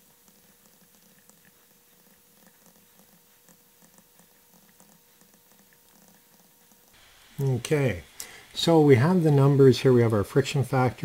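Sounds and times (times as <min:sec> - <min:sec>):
faint ticks: 0:00.0 - 0:07.0
faint steady hum: 0:00.0 - 0:11.0.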